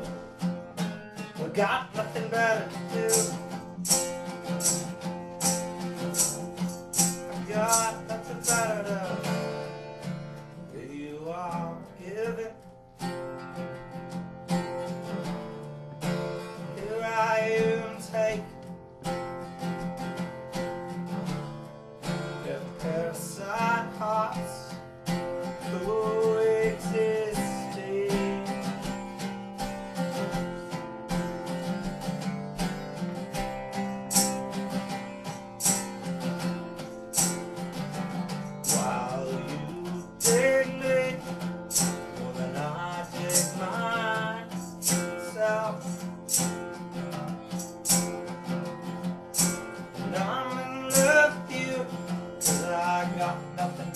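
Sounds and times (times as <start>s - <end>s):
acoustic guitar strumming: 0.0s - 53.9s
person singing: 1.4s - 4.8s, 5.4s - 9.7s, 16.7s - 18.6s, 22.3s - 24.8s, 25.6s - 28.9s, 38.6s - 48.0s, 49.4s - 53.9s.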